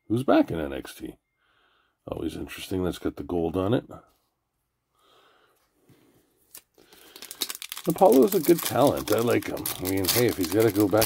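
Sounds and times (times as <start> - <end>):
man talking: 0.0 - 1.2, 2.0 - 4.1, 7.8 - 11.0
foil wrapper crinkling: 6.5 - 11.0.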